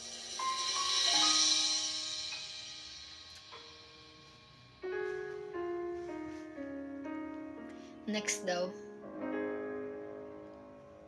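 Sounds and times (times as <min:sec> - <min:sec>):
piano backing music: 0:00.0 - 0:11.0.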